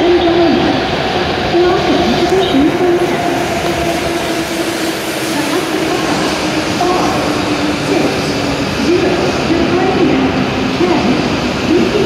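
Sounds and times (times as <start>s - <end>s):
train hum: 0.0s - 12.0s
train wheels rolling: 0.9s - 12.0s.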